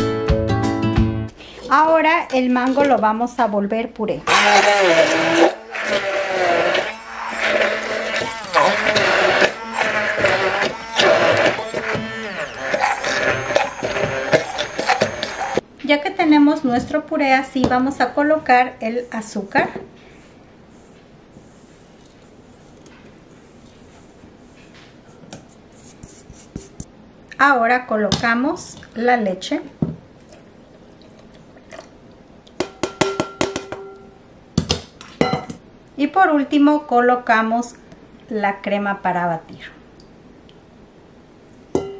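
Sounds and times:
immersion blender running: 4.3s - 15.6s.

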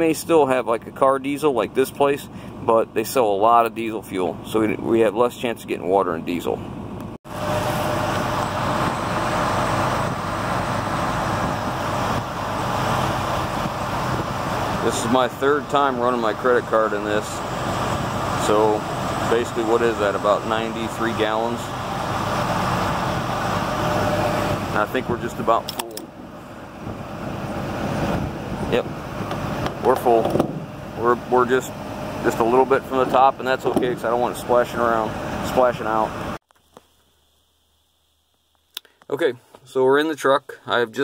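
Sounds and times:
fuel rushing through nozzle: 7.3s - 25.5s.

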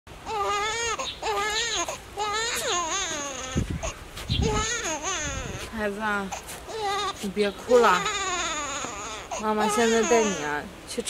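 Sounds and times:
infant crying: 0.2s - 10.6s.

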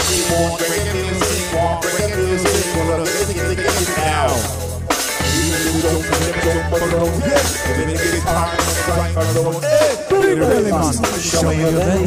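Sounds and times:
bass line: 0.0s - 12.0s
drums: 0.0s - 12.0s
reggae band playing: 0.0s - 12.0s
singer chanting: 0.0s - 12.0s.

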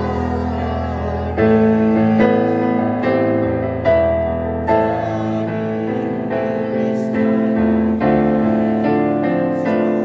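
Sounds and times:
digital piano playing hymn chords: 0.0s - 10.0s.

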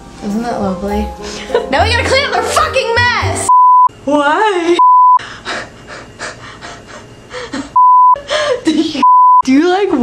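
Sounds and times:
censor bleep tone: 3.5s - 3.9s, 4.8s - 5.2s, 7.8s - 8.2s, 9.0s - 9.4s
breathy gasping laughter: 5.3s - 8.8s.

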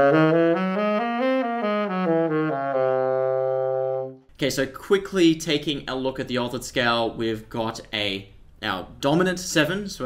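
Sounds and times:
tenor saxophone playing scale: 0.0s - 4.3s.

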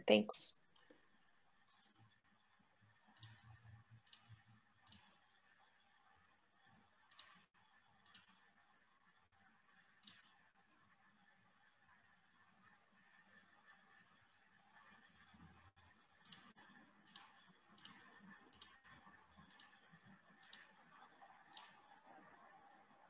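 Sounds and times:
computer mouse clicks: 3.1s - 5.4s, 6.6s - 8.6s, 9.9s - 10.5s, 16.2s - 22.6s.

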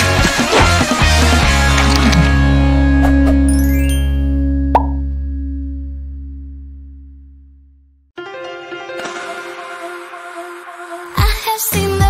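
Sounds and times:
jingle closing chord: 3.5s - 5.2s
pop sound effect: 4.7s - 5.0s.

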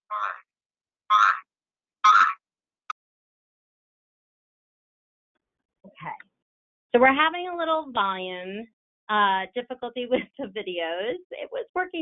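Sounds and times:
garbled voice bursts: 0.0s - 0.4s, 1.1s - 1.4s, 2.1s - 2.4s.

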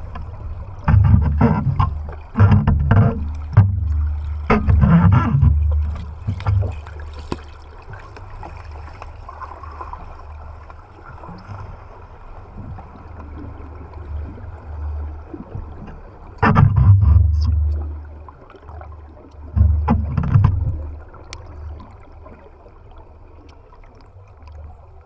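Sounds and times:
underwater low rumble: 0.0s - 25.0s.

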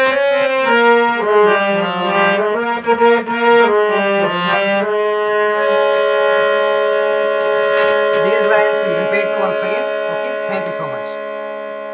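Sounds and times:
harmonium chord: 0.0s - 11.9s
man's voice: 8.2s - 11.2s.

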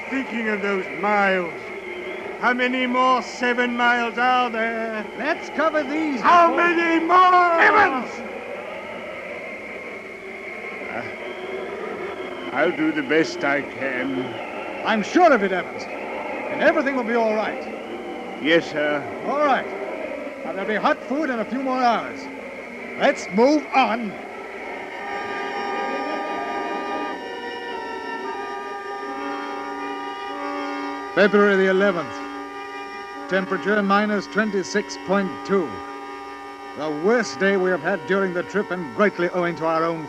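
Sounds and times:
faint high whistle: 0.0s - 40.0s
orchestral brass chords: 0.0s - 40.0s.

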